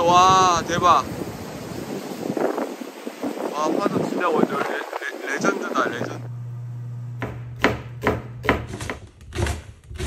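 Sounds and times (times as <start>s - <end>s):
waves breaking over rocks: 0.0s - 5.9s
wind buffeting microphone: 0.0s - 6.3s.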